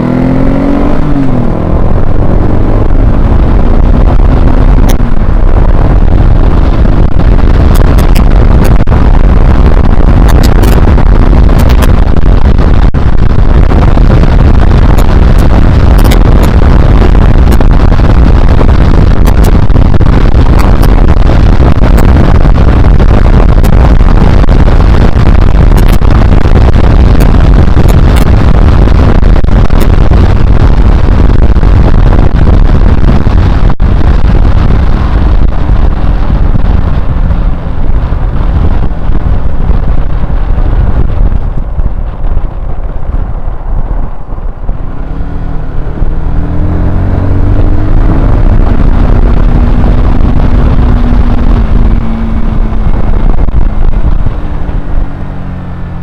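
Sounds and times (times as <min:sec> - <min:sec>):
motorcycle engine: 0:00.0 - 0:56.0
wind noise on microphone: 0:00.0 - 0:56.0.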